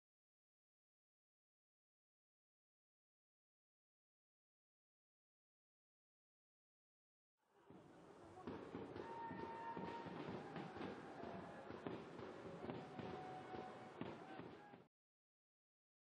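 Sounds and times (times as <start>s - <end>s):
crowd and voices: 7.5s - 14.9s.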